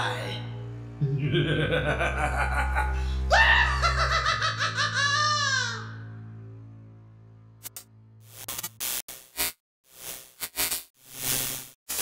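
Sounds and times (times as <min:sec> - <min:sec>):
person laughing in pulses: 0:01.0 - 0:05.9.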